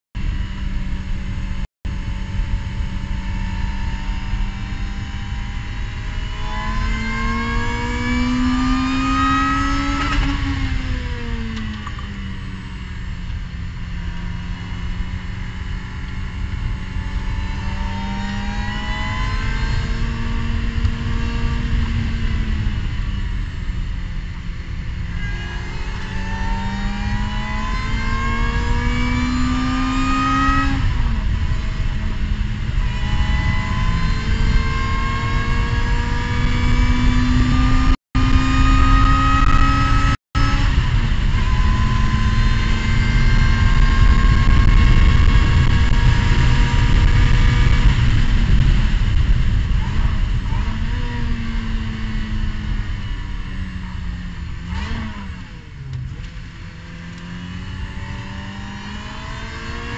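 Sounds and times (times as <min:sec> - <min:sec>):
road rumble: 0:00.2 - 0:59.9
wind: 0:00.2 - 0:59.9
race car engine revving: 0:01.6 - 0:59.9.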